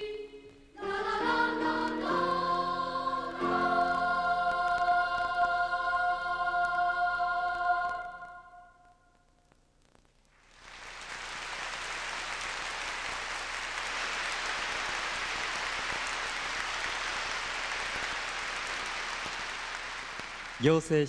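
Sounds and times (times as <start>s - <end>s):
audience applause: 10.4s - 21.0s.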